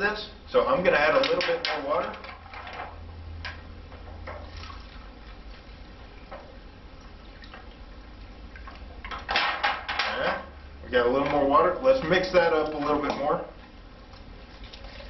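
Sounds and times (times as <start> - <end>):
water poured into a cup: 4.4 - 5.7.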